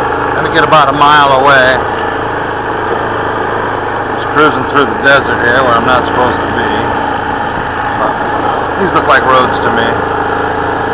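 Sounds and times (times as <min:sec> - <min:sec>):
quad bike engine running: 0:00.0 - 0:10.9.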